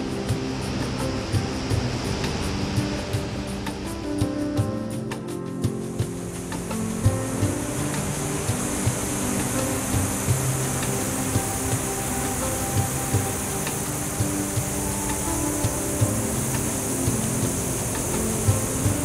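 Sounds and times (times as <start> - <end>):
steady high hiss: 0.0 - 19.0
drum hits: 0.3 - 19.0.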